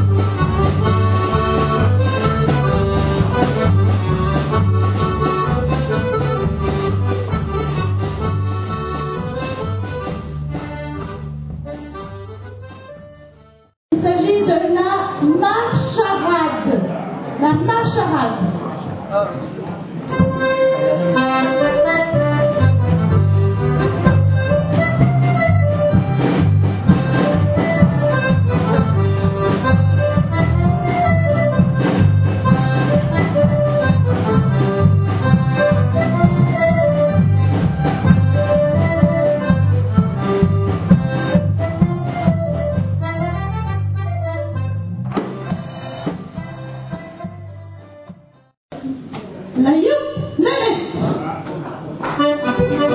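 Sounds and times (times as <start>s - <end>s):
accordion playing folk dance tune: 0.0s - 16.6s, 20.0s - 48.6s, 52.0s - 52.9s.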